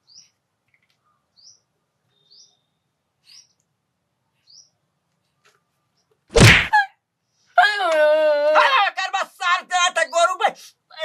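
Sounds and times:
small bird chirping: 0.0s - 6.2s.

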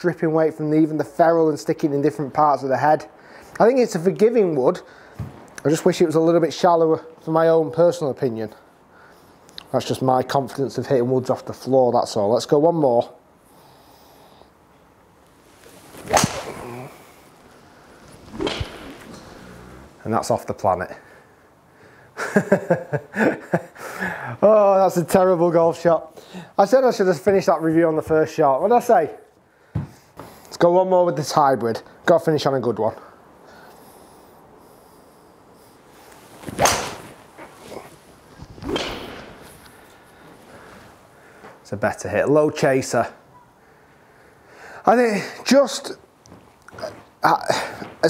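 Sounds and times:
golf club striking ball: 16.0s - 16.8s, 17.9s - 20.0s, 36.6s - 37.2s, 38.6s - 39.5s.

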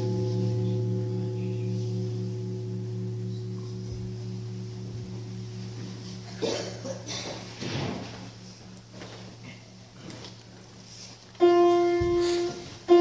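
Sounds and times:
large low bell ringing: 0.0s - 13.0s.

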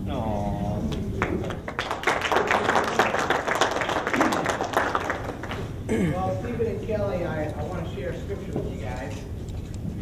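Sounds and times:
crowd applauding: 1.2s - 5.9s.

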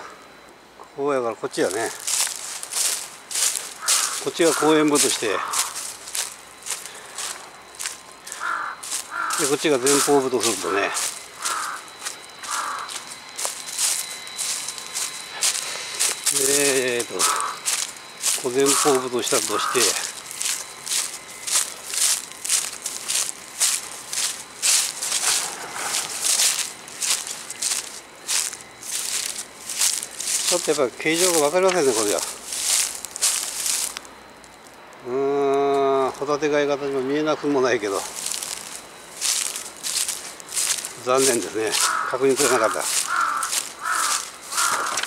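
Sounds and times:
footsteps on dry leaves: 1.4s - 34.9s, 37.0s - 45.0s
crow cawing: 3.3s - 7.3s, 8.2s - 13.7s, 17.0s - 21.2s, 41.7s - 45.0s.

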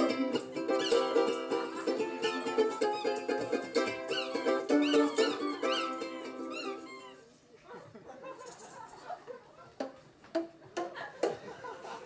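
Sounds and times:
ukulele chords: 0.0s - 7.1s
high squeaky notes: 0.0s - 7.3s.

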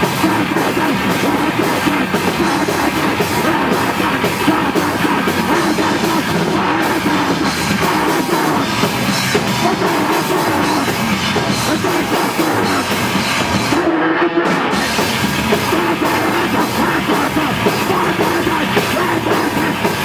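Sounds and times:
distorted electric guitars: 0.0s - 20.0s
drum kit: 0.0s - 20.0s.

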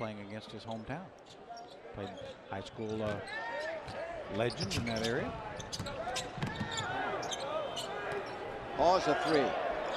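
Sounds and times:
arena crowd noise: 0.0s - 9.9s
basketball bouncing on court: 5.7s - 6.8s.

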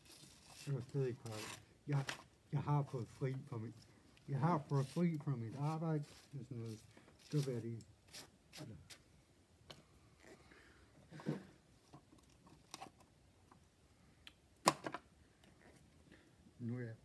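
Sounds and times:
objects clicking and scraping: 0.0s - 2.3s.

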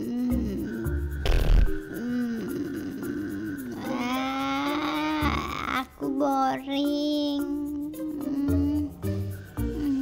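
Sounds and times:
cartoon voice humming and grunting: 0.0s - 6.0s, 7.4s - 9.1s
light background music: 0.0s - 10.0s.

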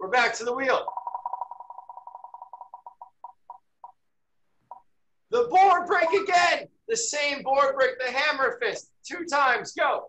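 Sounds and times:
spinner wheel ticking: 0.7s - 4.0s.

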